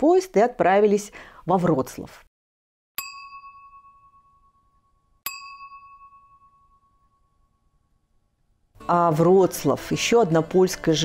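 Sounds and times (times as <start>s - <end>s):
bell-like ding chime: 3.0s - 8.4s.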